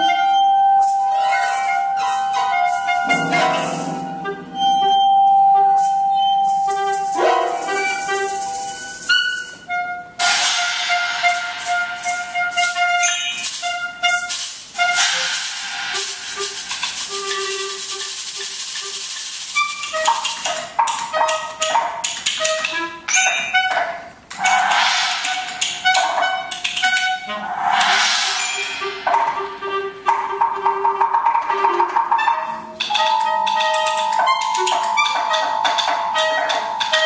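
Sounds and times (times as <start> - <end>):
chamber ensemble playing: 0.0 - 9.5, 31.8 - 37.0
held clarinet notes: 0.0 - 10.2, 10.8 - 15.3, 15.9 - 27.5, 28.8 - 37.0
hissing rattling noise texture: 10.2 - 20.5, 24.2 - 30.5.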